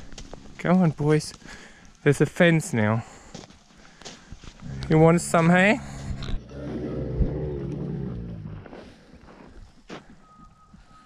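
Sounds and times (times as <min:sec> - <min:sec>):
camel moaning call: 0:04.6 - 0:08.7.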